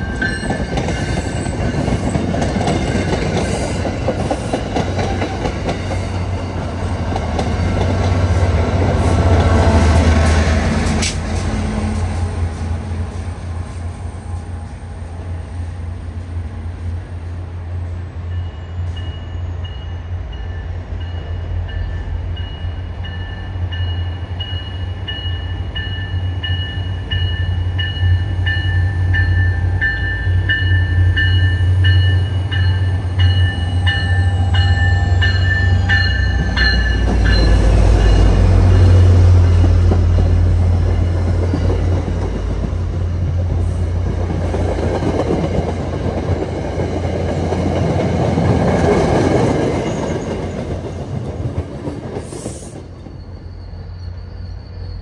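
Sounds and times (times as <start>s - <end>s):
train coaches clattering on rails: 0.0s - 16.4s, 18.3s - 55.0s
grade crossing bell ringing: 18.4s - 39.7s.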